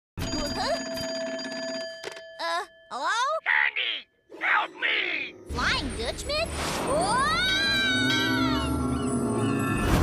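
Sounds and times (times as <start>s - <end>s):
rotary phone bell ringing: 0.2s - 3.0s.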